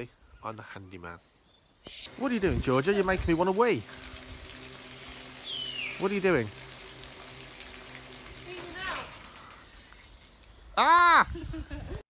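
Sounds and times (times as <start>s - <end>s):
water spraying from hose nozzle: 2.0s - 12.0s.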